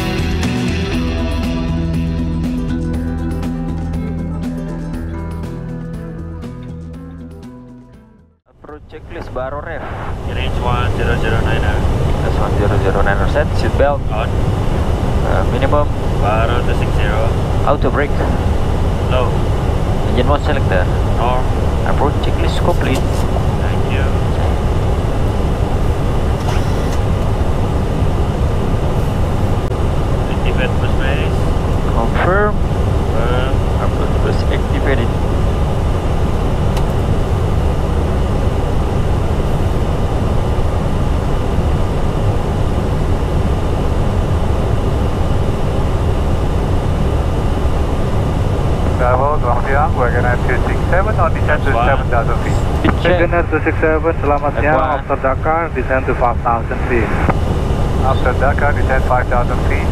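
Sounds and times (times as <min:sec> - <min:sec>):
rumble of airflow and engines: 0:08.5 - 0:59.9
brief voices: 0:48.8 - 0:57.3.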